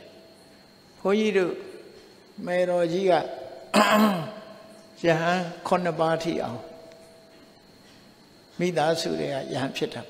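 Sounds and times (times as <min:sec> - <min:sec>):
man speaking: 0:02.4 - 0:03.4, 0:05.0 - 0:06.8, 0:08.5 - 0:10.0.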